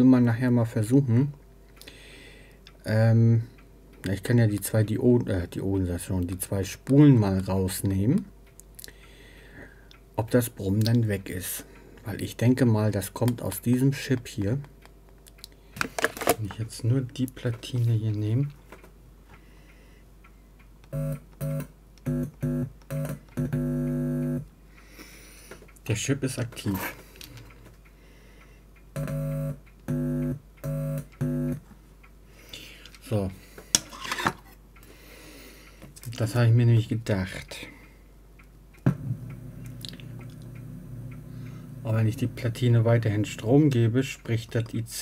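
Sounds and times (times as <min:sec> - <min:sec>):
buzzing electrical hum: 0:19.9 - 0:28.0, 0:28.6 - 0:34.8, 0:35.5 - 0:45.0.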